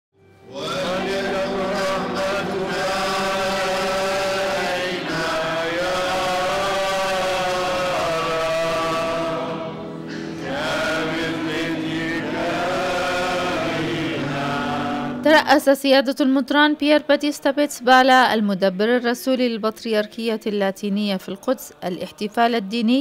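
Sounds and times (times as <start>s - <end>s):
people singing a hymn: 0.4s - 15.2s, 21.3s - 23.0s.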